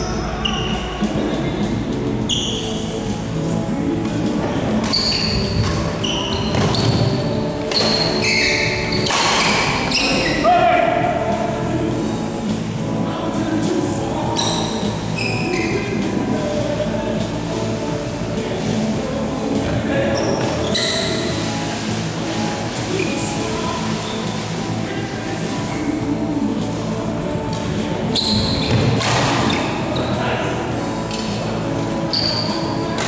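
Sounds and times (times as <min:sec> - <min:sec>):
shoes squeaking on court floor: 0:00.0 - 0:03.3, 0:04.0 - 0:10.5, 0:14.3 - 0:16.6, 0:19.6 - 0:33.0.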